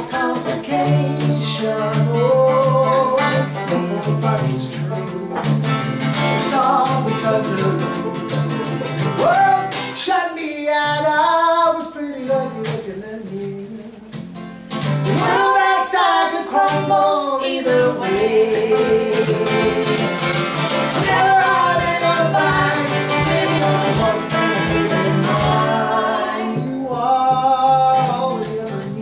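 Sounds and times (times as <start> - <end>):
male and female voices singing: 0.0 - 5.6, 6.3 - 14.0, 15.0 - 29.0
banjo picking: 0.0 - 10.0, 14.8 - 27.0
acoustic guitar strumming: 0.0 - 29.0.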